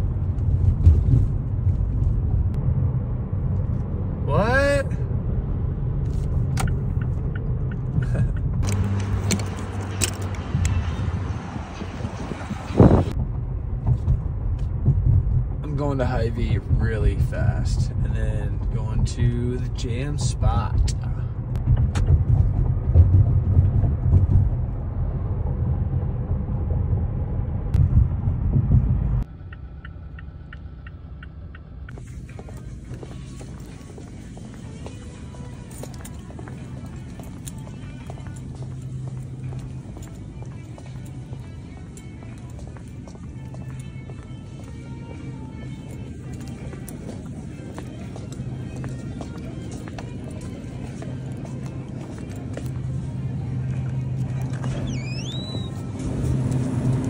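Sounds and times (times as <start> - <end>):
car road noise rumble: 0.0 - 57.0
faint music: 31.9 - 57.0.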